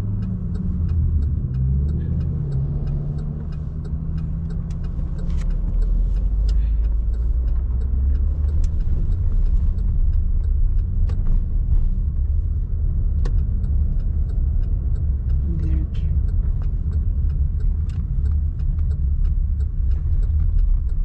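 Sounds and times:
car engine accelerating: 0.0 - 21.0
fast steady ticking: 0.0 - 21.0
road rumble: 0.0 - 21.0.

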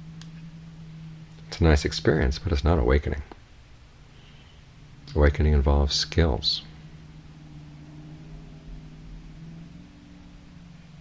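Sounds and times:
faint hiss: 0.0 - 11.0
low hum: 0.0 - 11.0.

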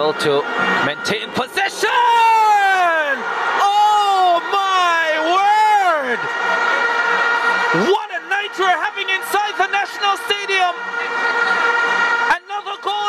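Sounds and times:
commentator shouting: 0.9 - 6.4, 7.6 - 11.2, 12.2 - 13.0.

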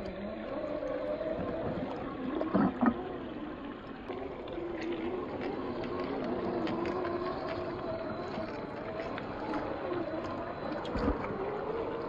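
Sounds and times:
water splashing: 0.0 - 12.0.

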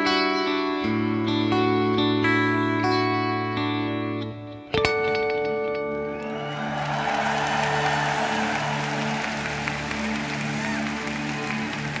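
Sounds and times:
audience applauding and cheering: 6.0 - 12.0.

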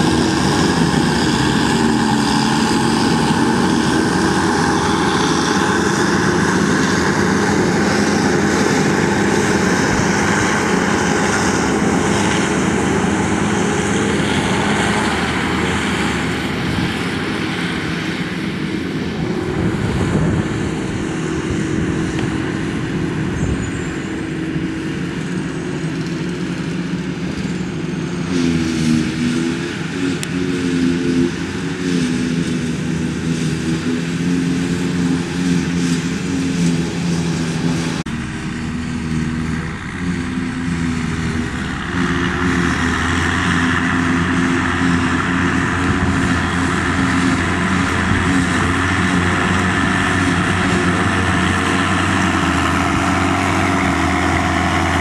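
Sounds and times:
forage harvester droning: 0.0 - 55.0
tractor engine: 0.0 - 55.0.

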